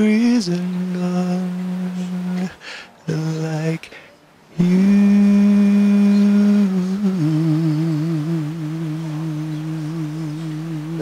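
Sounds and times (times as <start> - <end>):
man singing held notes: 0.0 - 11.0.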